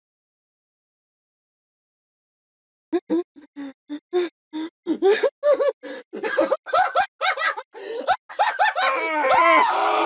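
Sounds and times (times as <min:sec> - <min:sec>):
person gasping laugh-like: 0:03.0 - 0:10.0.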